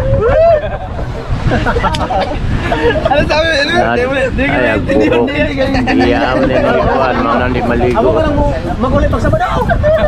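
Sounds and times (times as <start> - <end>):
people talking over one another: 0.0 - 10.0
steady low rumble: 0.0 - 10.0.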